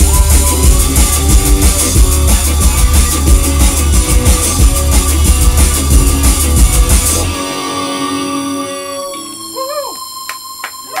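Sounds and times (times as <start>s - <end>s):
crowd whooping: 0.0s - 2.9s
rock band held notes ringing: 0.0s - 11.0s
hand claps: 10.2s - 11.0s.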